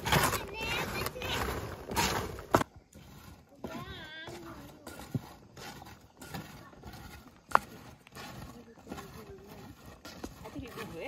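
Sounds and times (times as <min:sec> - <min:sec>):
wooden sticks scraping metal pot: 0:00.0 - 0:11.0.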